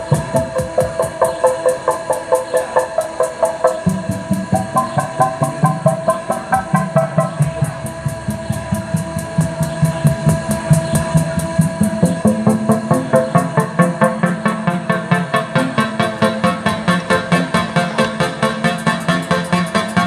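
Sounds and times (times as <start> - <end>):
repeating synth figure: 0.0 - 8.4, 11.1 - 20.0
bass line: 0.0 - 20.0
synthpop drum machine beat: 0.0 - 20.0.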